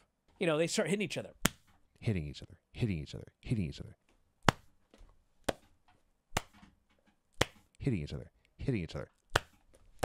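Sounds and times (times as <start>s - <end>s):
hand smacks: 4.4s - 4.7s, 6.3s - 6.6s, 7.4s - 7.6s, 9.3s - 9.6s.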